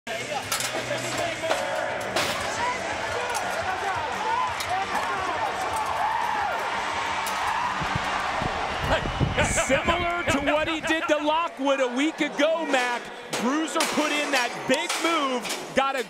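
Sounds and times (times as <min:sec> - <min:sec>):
music over public address: 0:00.1 - 0:11.5
arena crowd shouting: 0:01.6 - 0:15.4.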